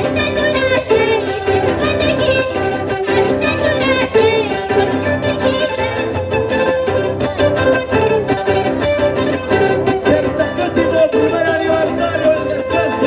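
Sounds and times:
fiddle-like melody: 0.0 - 13.0
strummed string instruments: 0.0 - 13.0.

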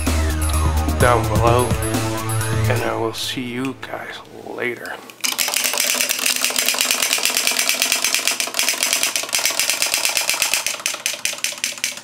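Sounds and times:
chattering teeth toy clicking: 5.2 - 12.0.

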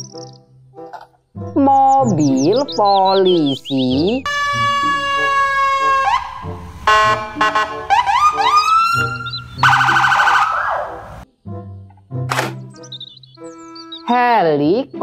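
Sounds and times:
police siren whoops and chirps: 4.2 - 11.2.

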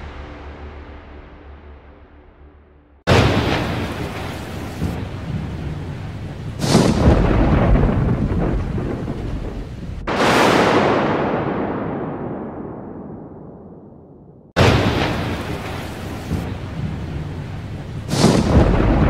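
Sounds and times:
thunder crashes: 3.1 - 19.0.

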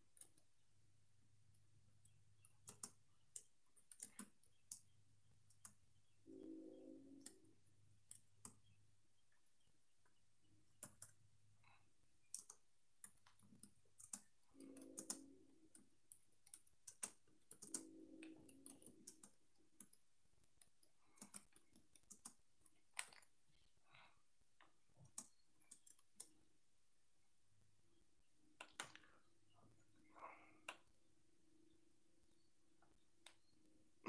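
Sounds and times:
faint typing clicks: 1.9 - 5.9, 7.2 - 8.8, 10.0 - 23.1, 25.0 - 26.4.

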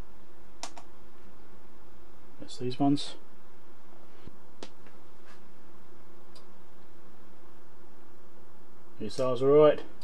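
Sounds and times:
faint constant hum: 0.0 - 10.0
room hiss: 0.0 - 10.0.

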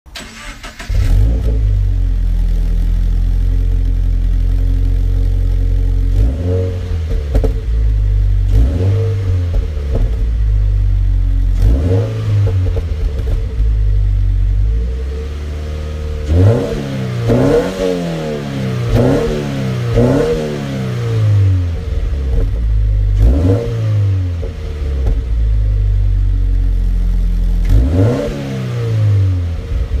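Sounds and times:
car engine starting and idling: 0.1 - 30.0
engine revving in throttle blips: 0.2 - 30.0.

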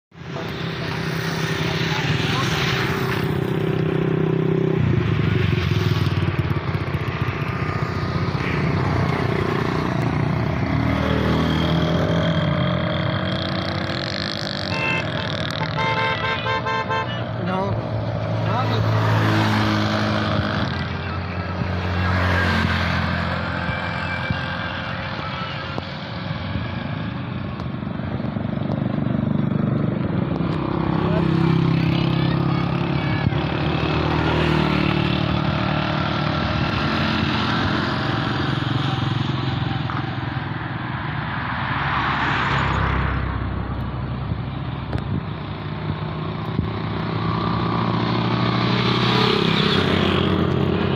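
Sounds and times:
motorcycles passing: 0.1 - 50.9
road and wind noise: 0.1 - 50.9
vehicle engine hum: 0.1 - 50.9.

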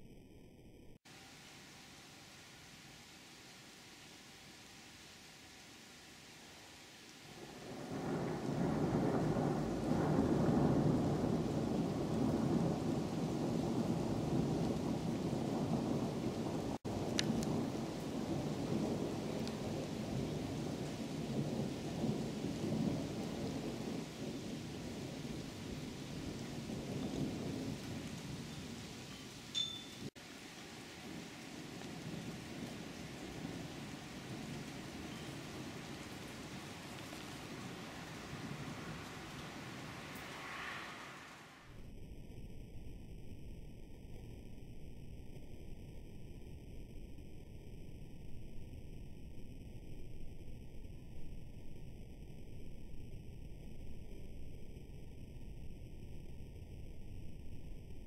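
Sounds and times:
thunder rolling: 7.3 - 41.8.

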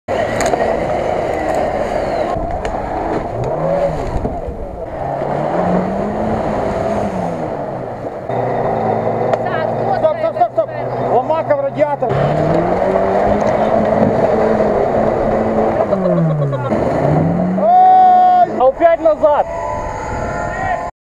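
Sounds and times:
off-road engines revving: 0.1 - 20.9.

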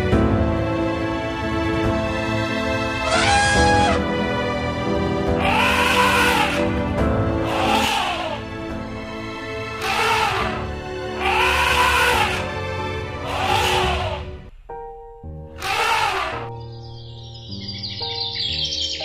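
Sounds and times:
background music: 0.0 - 19.0
elephants trumpeting: 3.0 - 4.0, 5.4 - 6.7, 7.4 - 8.4, 9.8 - 12.6, 13.2 - 14.3, 15.6 - 16.6
birds chirping: 15.6 - 19.0.

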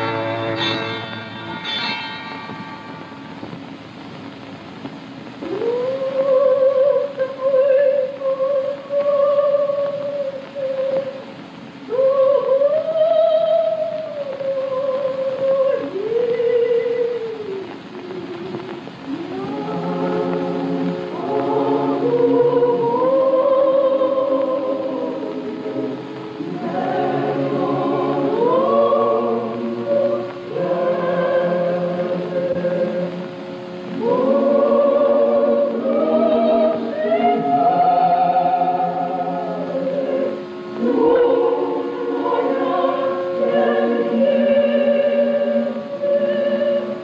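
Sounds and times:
congregation singing a hymn: 11.9 - 17.6, 18.5 - 47.0.

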